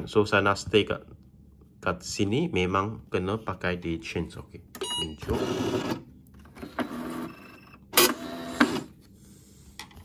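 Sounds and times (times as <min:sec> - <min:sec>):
punch card machine whirring: 0:05.2 - 0:09.1.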